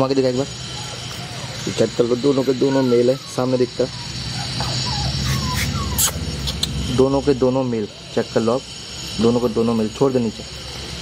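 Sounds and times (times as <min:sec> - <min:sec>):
puppies whining: 0:00.0 - 0:08.2.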